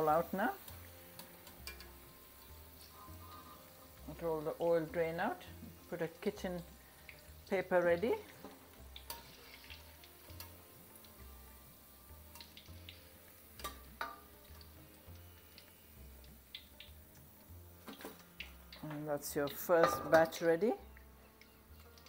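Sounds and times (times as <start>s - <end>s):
deep-frying oil sizzling: 0.0s - 22.0s
wire strainer clinking on metal: 0.1s - 2.0s.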